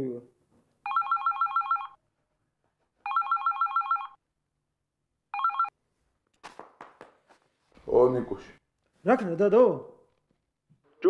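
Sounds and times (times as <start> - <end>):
warbling phone ring: 0.8 - 2.0, 3.0 - 4.2, 5.3 - 5.8.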